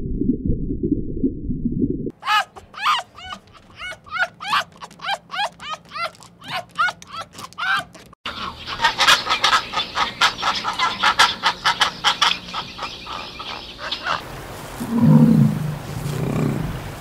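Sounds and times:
birds chattering: 2.2 - 14.2
jackal yipping: 2.2 - 14.2.

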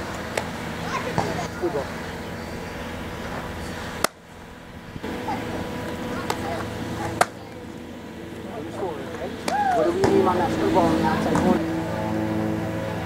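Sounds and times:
outdoor background hum: 0.0 - 13.0.

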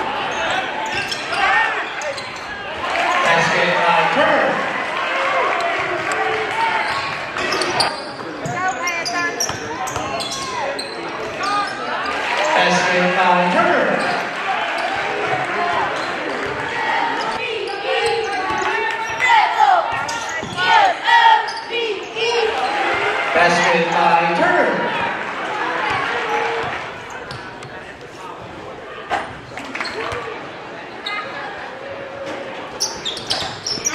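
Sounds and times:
voices of players and crowd: 0.0 - 33.9
sneakers squeaking on court: 0.3 - 2.6, 6.8 - 11.9, 19.9 - 20.7, 25.8 - 27.8, 29.2 - 30.3, 32.8 - 33.9.

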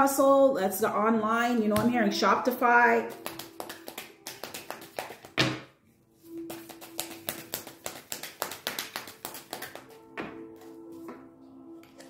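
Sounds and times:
soft background music: 0.0 - 12.0
cards being shuffled by hand: 3.1 - 5.4, 6.4 - 10.0.

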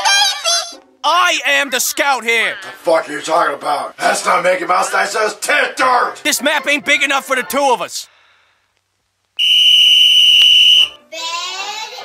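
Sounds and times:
whistle blown: 9.4 - 11.0.

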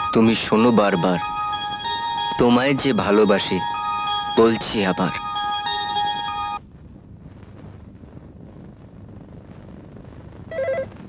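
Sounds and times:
person speaking: 0.0 - 5.4
electronic chiming tune: 0.0 - 6.6.

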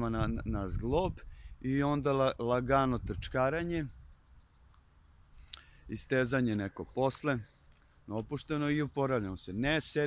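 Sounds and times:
man talking: 0.0 - 4.0, 5.9 - 7.5, 8.1 - 10.0.

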